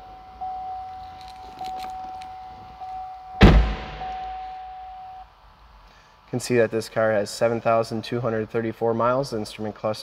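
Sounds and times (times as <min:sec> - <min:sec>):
car warning chime: 0:01.6 - 0:05.2.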